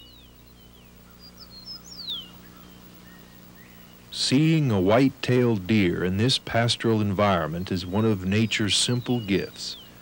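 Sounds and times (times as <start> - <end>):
small bird chirping and whistling: 0.0 - 4.0
steady low hum: 0.0 - 10.0.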